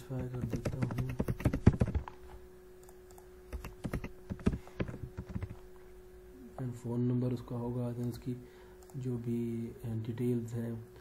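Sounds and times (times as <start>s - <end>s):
faint steady hum: 0.0s - 11.0s
typing on keyboard: 0.2s - 2.1s, 2.8s - 5.6s.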